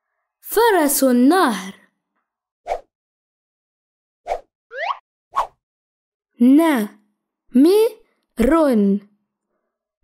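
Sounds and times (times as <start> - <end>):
person reading aloud: 0.4 - 1.8, 6.4 - 9.2.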